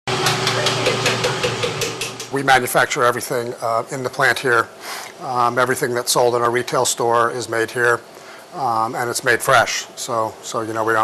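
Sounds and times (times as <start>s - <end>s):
machinery humming: 0.1s - 2.8s.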